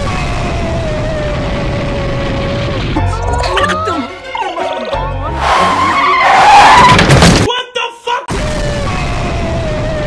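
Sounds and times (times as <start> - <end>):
car tyres skidding and squealing: 5.2 - 7.0.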